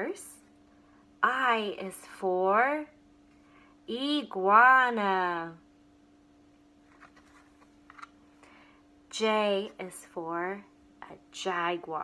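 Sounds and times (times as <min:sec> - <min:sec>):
cardboard page being turned: 0:06.8 - 0:08.2.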